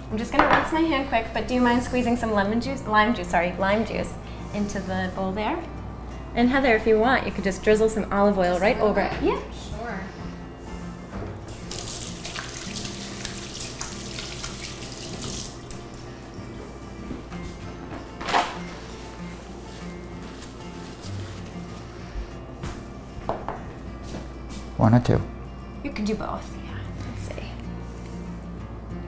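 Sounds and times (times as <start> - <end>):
soft background music: 0.0 - 29.0
faucet running: 11.5 - 16.0.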